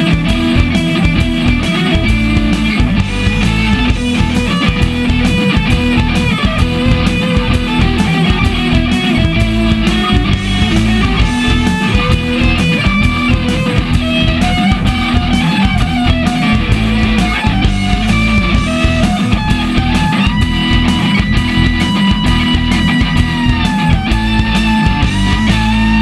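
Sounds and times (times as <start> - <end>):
bass: 0.0 - 26.0
drums keeping a beat: 0.0 - 26.0
electric guitar melody: 0.0 - 26.0.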